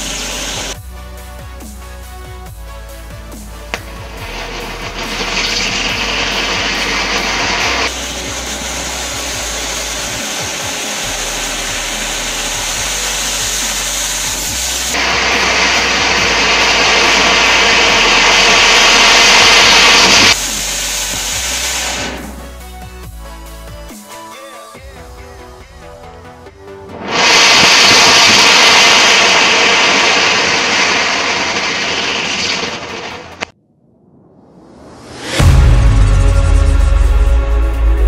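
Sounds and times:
firework spraying with loud hiss: 0:00.0 - 0:00.8, 0:03.2 - 0:22.6, 0:27.0 - 0:33.5
background music: 0:00.1 - 0:30.8, 0:35.0 - 0:38.0.

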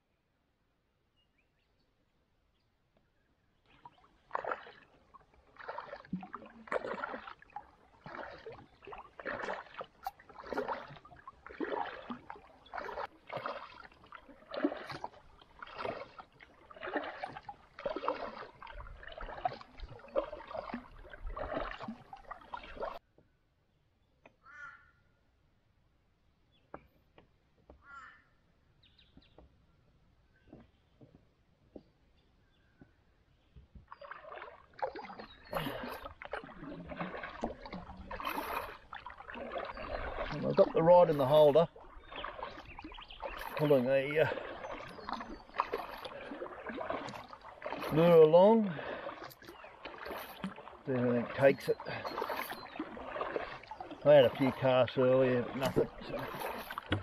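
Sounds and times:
faint single bird calls: 0:24.4 - 0:25.1, 0:27.8 - 0:28.4.

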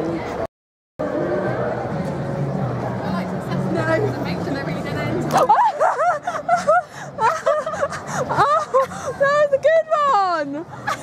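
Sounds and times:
woman laughing: 0:05.4 - 0:09.4.

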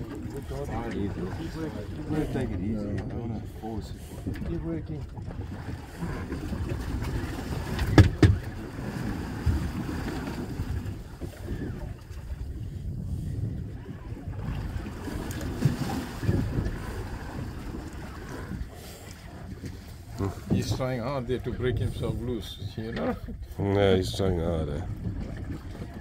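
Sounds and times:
water lapping against boat hull: 0:00.0 - 0:26.0
wind buffeting microphone: 0:00.0 - 0:26.0.

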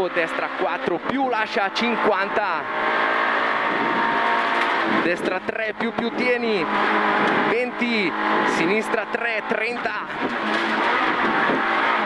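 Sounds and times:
rally car engine running hard: 0:00.0 - 0:12.0.

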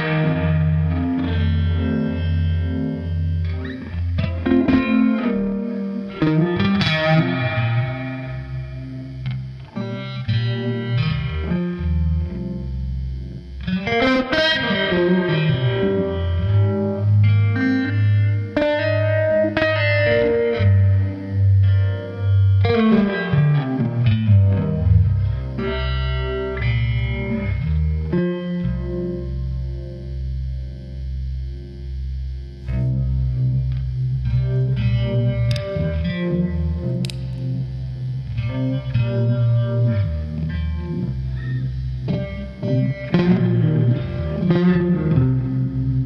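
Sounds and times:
electric guitar blues playing: 0:00.0 - 0:46.0.

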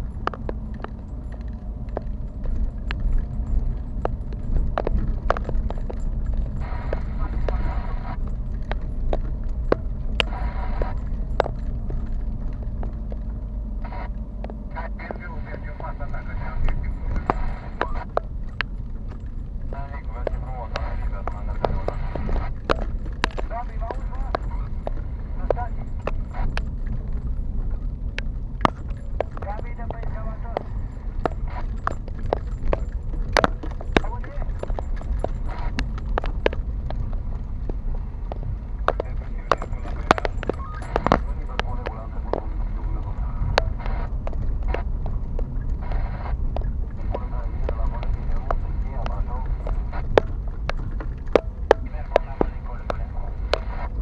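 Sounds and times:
car rumble on rough road: 0:00.0 - 0:54.0.

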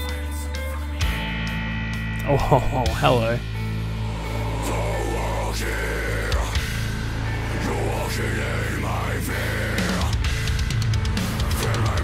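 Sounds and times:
distorted electric guitars: 0:01.0 - 0:12.0.

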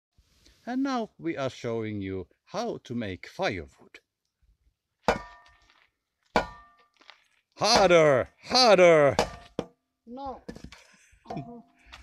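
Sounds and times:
log striking with ringing knock: 0:05.1 - 0:05.5, 0:06.4 - 0:06.8, 0:09.1 - 0:09.7.

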